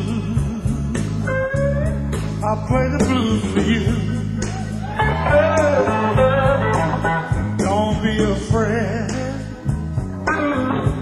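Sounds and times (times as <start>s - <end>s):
live blues band playing: 0.0s - 11.0s
person singing: 0.0s - 11.0s
electric guitar bent notes: 0.9s - 8.0s, 9.1s - 11.0s.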